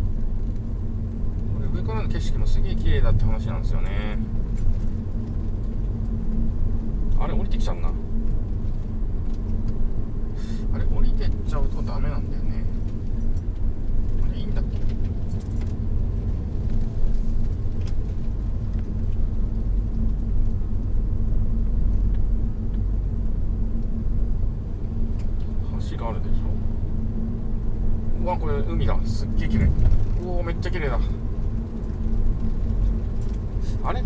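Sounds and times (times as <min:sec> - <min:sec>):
car engine and road noise: 0:00.0 - 0:34.0.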